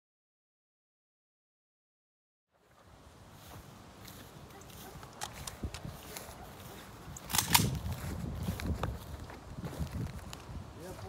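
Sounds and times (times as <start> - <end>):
low wind: 2.5 - 11.0
footsteps on dirt and grass: 2.6 - 11.0
sharp clicks: 7.2 - 7.8.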